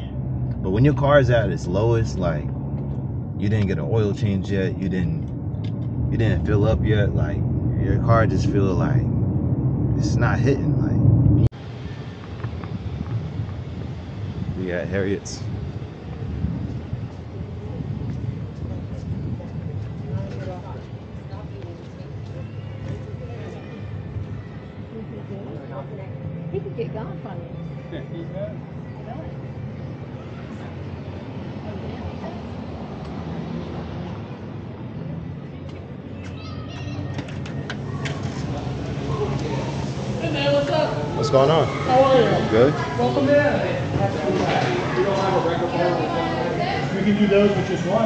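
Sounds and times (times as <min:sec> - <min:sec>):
steady low rumble: 0:00.0 - 0:22.4
wind on microphone: 0:05.1 - 0:22.2.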